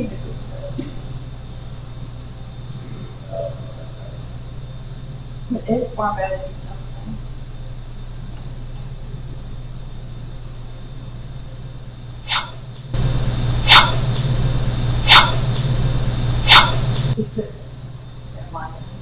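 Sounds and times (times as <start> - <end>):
steady hum and hiss: 0.0 - 19.0.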